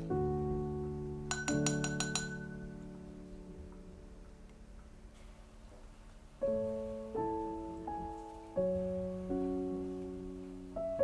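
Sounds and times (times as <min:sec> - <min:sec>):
soft piano music: 0:00.0 - 0:11.0
spatula clinking glass jar: 0:01.3 - 0:02.6.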